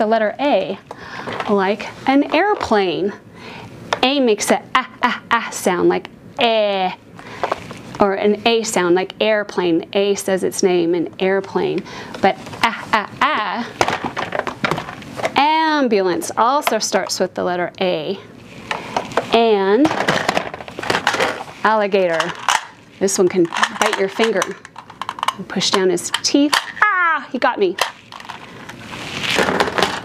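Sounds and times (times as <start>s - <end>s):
woman's drawn-out voice: 4.0s - 7.0s, 8.0s - 13.8s, 19.3s - 20.0s, 25.4s - 27.8s
toys rummaged in plastic bin: 7.4s - 7.8s, 13.6s - 15.4s, 18.7s - 26.8s, 27.8s - 30.0s.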